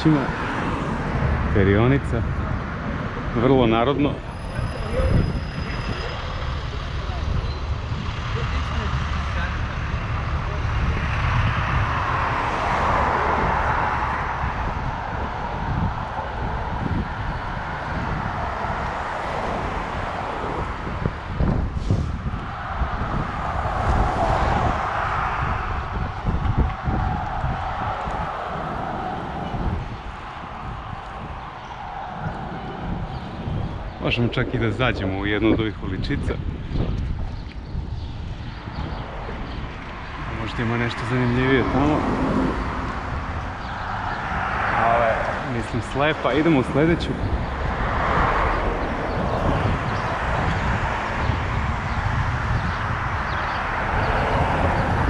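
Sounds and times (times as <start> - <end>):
street traffic: 0.0 - 55.0
wind rumbling on microphone: 0.0 - 55.0.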